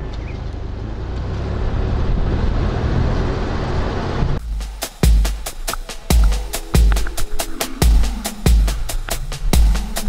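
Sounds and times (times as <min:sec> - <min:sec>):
car and road rumble: 0:00.0 - 0:10.0.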